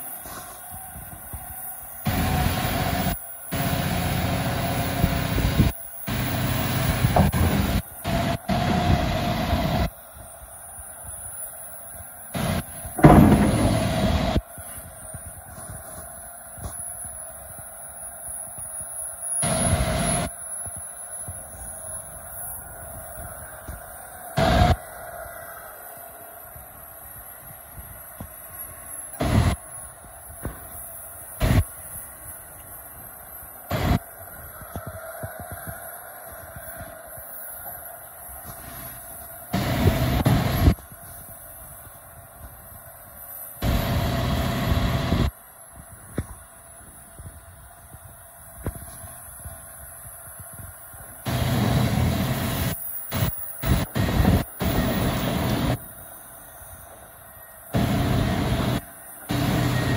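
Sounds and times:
excavator engine and hydraulics: 0.0 - 59.9
steady whine: 0.0 - 59.9
loud rumbling bursts: 12.4 - 14.4.

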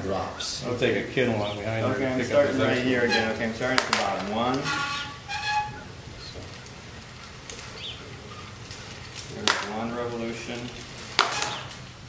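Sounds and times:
faint squeak: 4.6 - 5.9.

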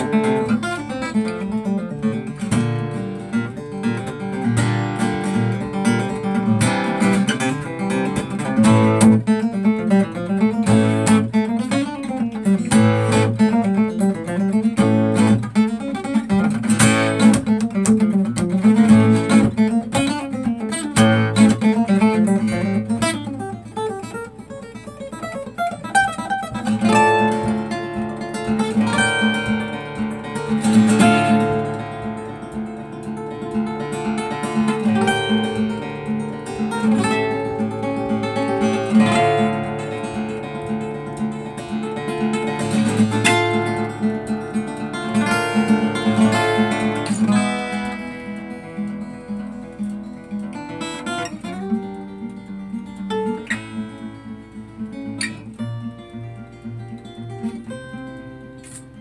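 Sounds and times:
solo acoustic guitar: 0.0 - 59.0.

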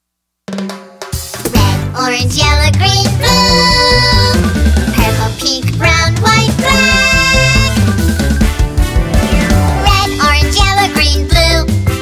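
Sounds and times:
backing track: 0.5 - 12.0
child singing: 1.5 - 4.4, 5.0 - 7.8, 9.8 - 11.8.

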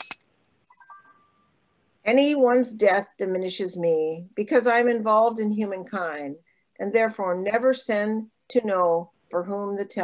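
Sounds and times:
small bell ringing: 0.0 - 1.4.

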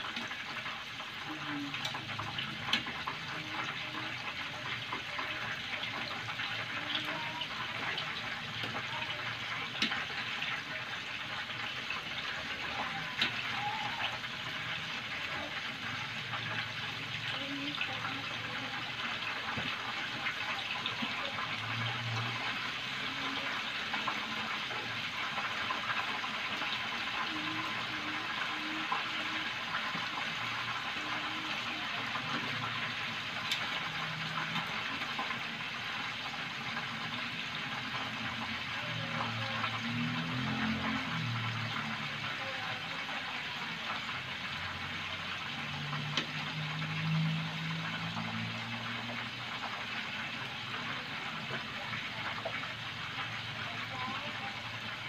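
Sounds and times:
tofu sizzling in oil: 0.0 - 55.0.

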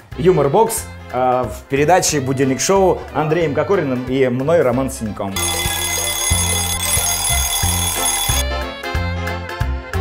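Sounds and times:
jingle music with bass line: 5.3 - 8.8
alarm clock bell ringing: 5.4 - 8.4.

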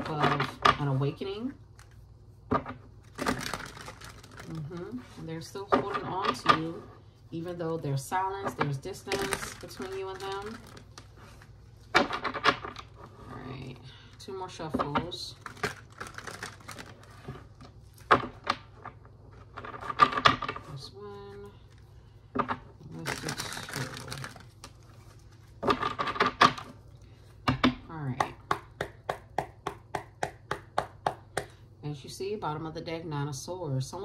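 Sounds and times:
cards being shuffled: 8.5 - 13.2, 22.8 - 26.8.

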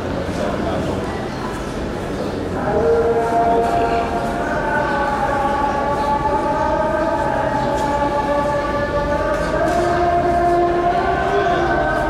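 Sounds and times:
man chanting a prayer: 2.5 - 12.0.

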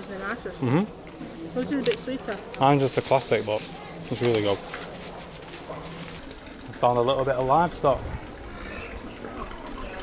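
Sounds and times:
open-air market ambience: 0.0 - 10.0.

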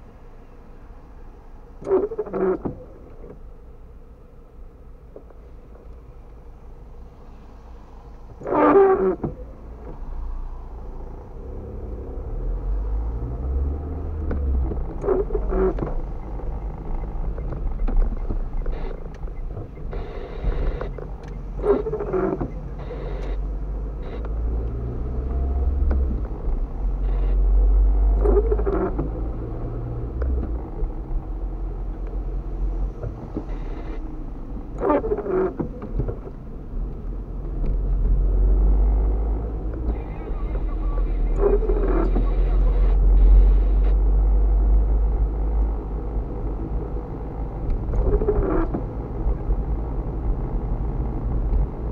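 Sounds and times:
engine and road rumble: 0.0 - 51.9
windscreen wipers sweeping: 1.4 - 3.5, 5.1 - 51.9.

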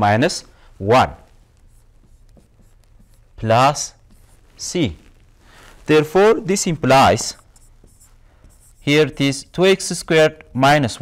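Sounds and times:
stylus scratching on screen: 0.8 - 10.3.

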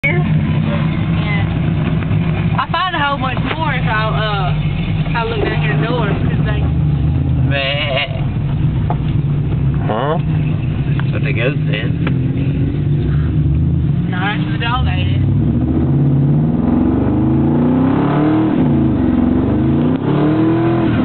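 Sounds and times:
people talking: 0.0 - 1.6, 2.6 - 6.7, 7.5 - 8.2, 9.8 - 10.3, 11.0 - 12.0, 14.1 - 15.2
truck engine running: 0.0 - 21.0.

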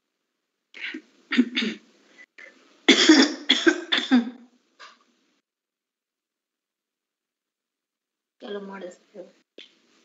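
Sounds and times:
person coughing: 0.8 - 1.8, 2.9 - 4.4.

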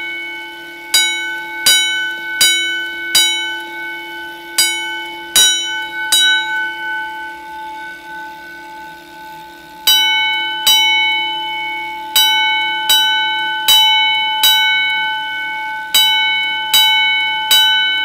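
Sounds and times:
faint steady hum: 0.0 - 18.0
fire alarm bell ringing: 0.0 - 18.0.

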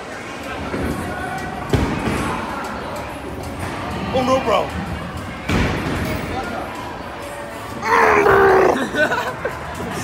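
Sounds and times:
busy room chatter: 0.0 - 10.0.

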